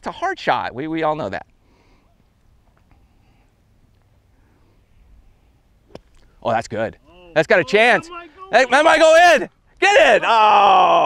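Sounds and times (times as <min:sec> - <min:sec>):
faint outdoor background: 0:00.0 - 0:11.0
golf club striking sand: 0:05.8 - 0:06.6.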